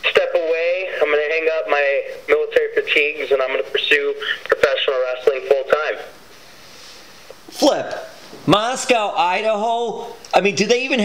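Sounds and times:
person talking radio-like voice: 0:00.0 - 0:06.1.

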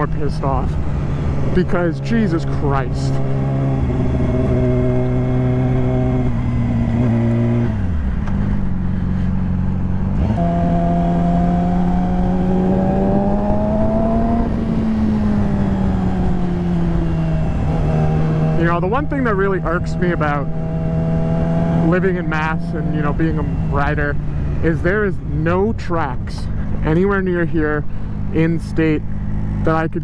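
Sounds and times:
motorcycle engine at road speed: 0:00.0 - 0:30.0.

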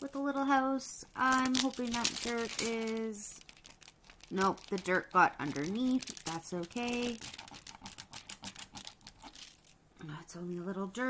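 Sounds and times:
plastic film crinkling: 0:00.0 - 0:09.8.

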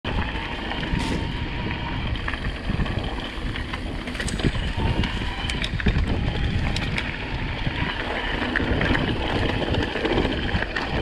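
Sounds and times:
bike clicks and rattles: 0:00.1 - 0:11.0
bike tyres rolling on dirt: 0:00.1 - 0:11.0
wind noise on microphone: 0:00.1 - 0:11.0.

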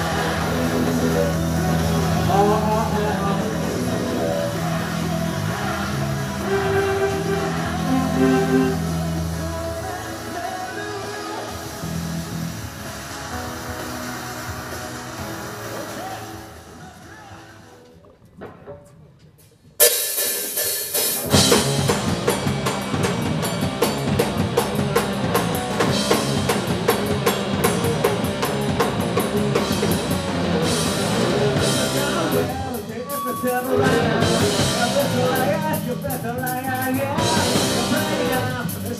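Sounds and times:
driving drums: 0:00.0 - 0:16.3, 0:18.2 - 0:38.9
live rock band: 0:00.0 - 0:17.1, 0:19.8 - 0:38.9.

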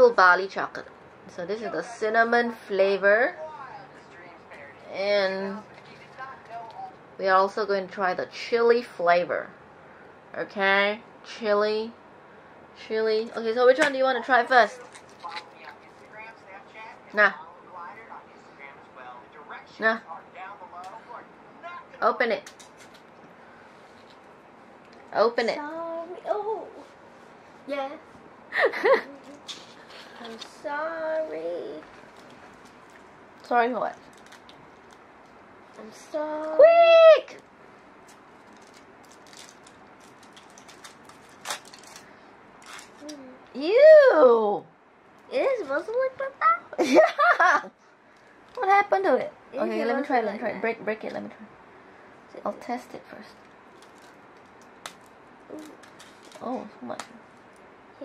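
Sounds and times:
wrapper crinkling: 0:14.8 - 0:16.2, 0:33.9 - 0:35.8, 0:38.0 - 0:43.1, 0:53.4 - 0:56.7.

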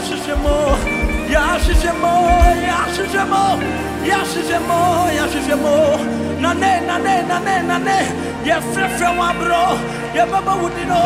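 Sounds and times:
sustained keyboard chords: 0:00.0 - 0:04.2.

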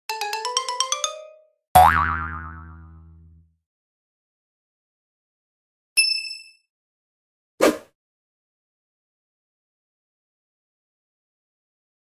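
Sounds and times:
cartoon boing: 0:01.8 - 0:03.4.

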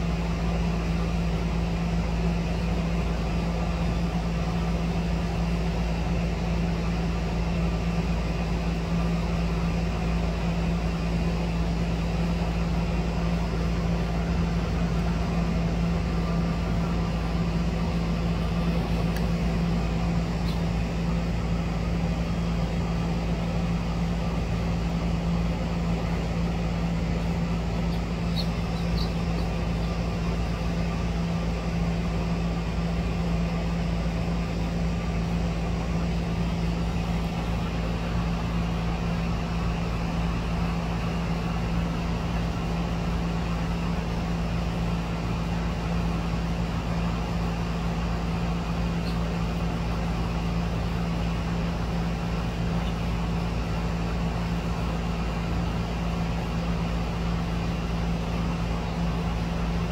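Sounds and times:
steady mechanical hum: 0:00.0 - 0:59.9
faint high chirps: 0:27.8 - 0:30.1.

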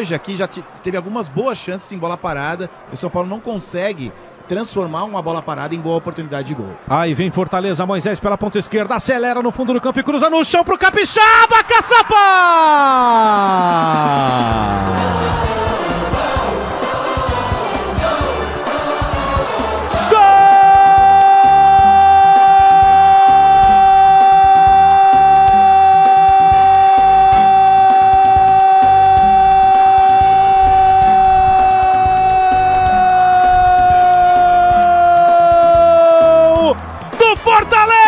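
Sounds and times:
commentator's long goal shout: 0:10.4 - 0:15.4, 0:20.0 - 0:38.0.

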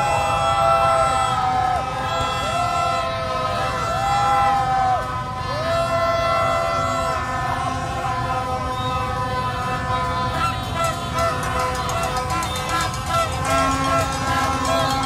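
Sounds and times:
crowd din: 0:00.0 - 0:15.0
motorbike engines: 0:00.0 - 0:15.0
plastic fan horns tooting: 0:04.6 - 0:15.0.

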